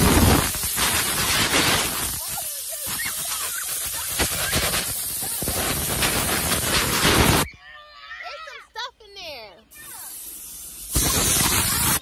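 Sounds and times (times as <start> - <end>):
rushing air hiss: 0.0 - 7.5, 9.7 - 12.0.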